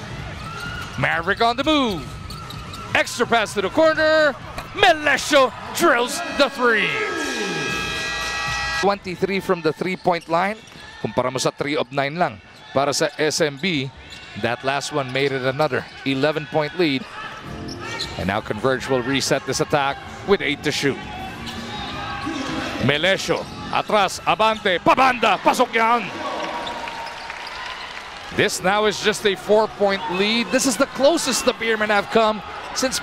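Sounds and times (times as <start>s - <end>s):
arena crowd noise: 0.0s - 33.0s
buzzy electronic tone: 7.2s - 8.9s.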